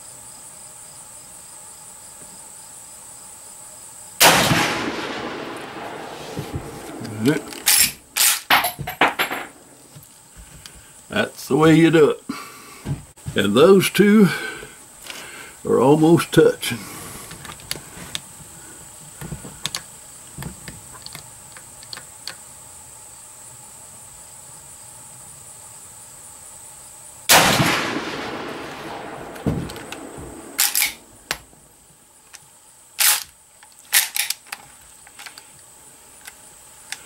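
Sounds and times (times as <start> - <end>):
rifle shot echoing: 4.2 - 8.6, 27.3 - 31.4
rifle lever metallic clacks: 29.4 - 31.4.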